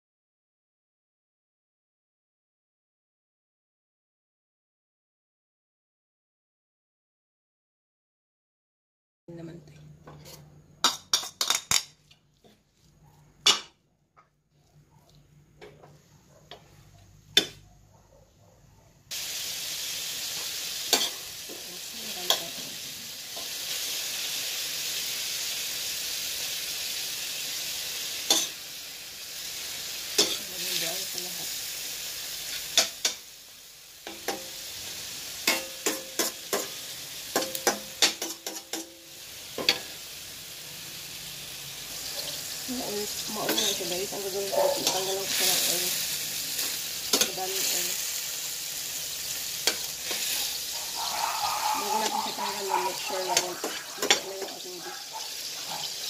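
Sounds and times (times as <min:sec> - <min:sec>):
spoon clinking and scraping pan: 0:10.1 - 0:12.6, 0:20.4 - 0:21.6, 0:28.3 - 0:28.6, 0:30.2 - 0:30.5, 0:35.4 - 0:39.0, 0:39.6 - 0:39.9, 0:43.4 - 0:45.8, 0:49.6 - 0:56.0
meat sizzling in a frying pan: 0:19.1 - 0:56.0.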